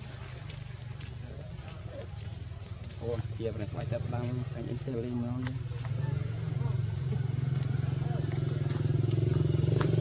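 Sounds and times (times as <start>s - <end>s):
motorcycle engine running: 2.6s - 10.0s.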